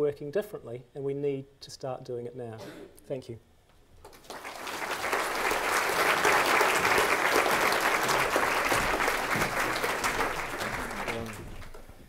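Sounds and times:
audience applauding: 0:04.0 - 0:12.0.

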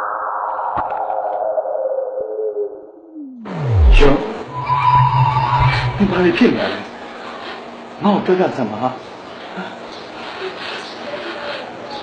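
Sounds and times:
tone sliding down in pitch: 0:03.3 - 0:06.7
electronic drone: 0:03.4 - 0:06.8
noisy passage with high tone: 0:03.5 - 0:07.0.

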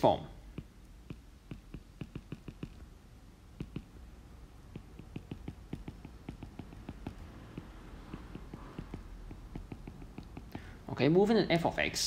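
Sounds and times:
stylus tapping on tablet screen: 0:00.0 - 0:10.8.

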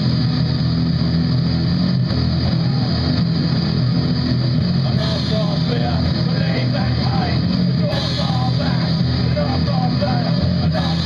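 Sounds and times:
bass guitar: 0:00.0 - 0:11.0
drums: 0:00.0 - 0:11.0
electric guitars: 0:00.0 - 0:11.0.

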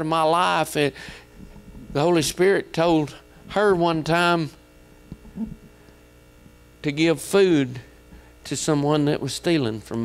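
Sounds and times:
man speaking: 0:00.0 - 0:01.0, 0:01.9 - 0:04.6, 0:06.8 - 0:07.9, 0:08.5 - 0:10.0
low electrical mains hum: 0:00.0 - 0:10.0.

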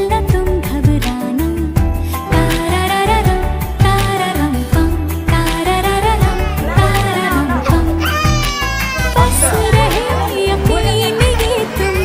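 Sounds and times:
infant crying: 0:06.0 - 0:10.2.

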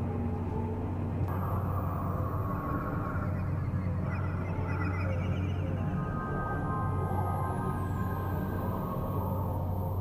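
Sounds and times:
low drone: 0:00.0 - 0:10.0.

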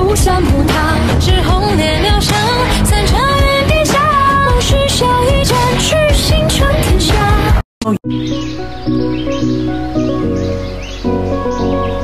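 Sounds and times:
birdsong-like chirps: 0:08.1 - 0:12.0
music of held chords: 0:08.1 - 0:12.0.

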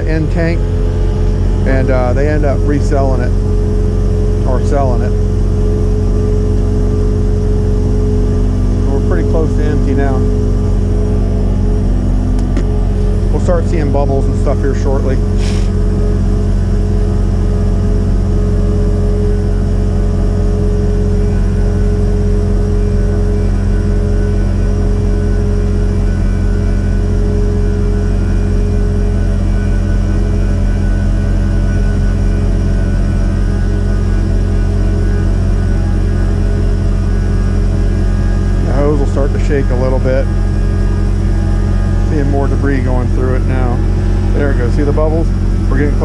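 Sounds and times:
truck engine and vacuum pump drone: 0:00.0 - 0:46.0.

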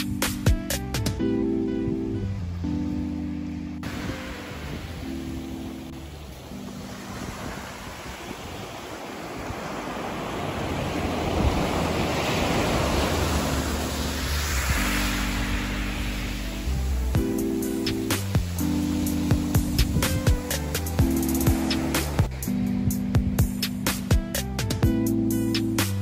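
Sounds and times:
quiet guitar music: 0:00.0 - 0:07.6, 0:13.1 - 0:26.0
waves washing up pebble beach: 0:03.8 - 0:22.6.

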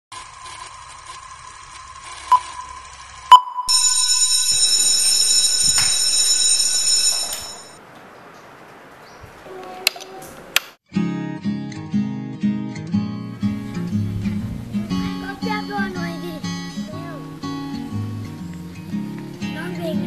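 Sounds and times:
high-pitched whine: 0:02.0 - 0:05.9
faint steady beep tone: 0:02.3 - 0:04.4.

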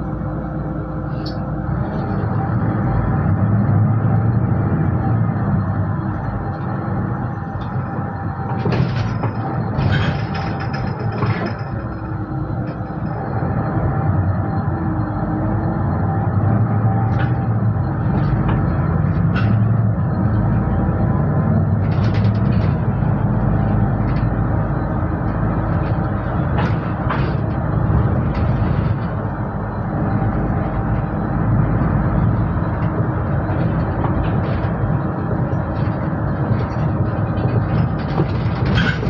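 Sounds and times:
bus engine and road rumble: 0:00.0 - 0:39.0.

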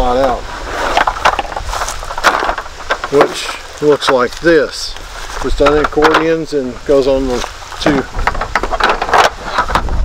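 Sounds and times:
wind rumble on microphone: 0:07.1 - 0:10.0.

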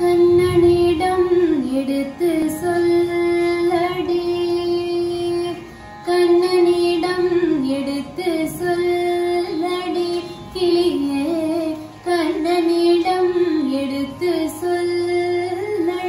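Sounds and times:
woman singing devotional song: 0:00.0 - 0:16.0.

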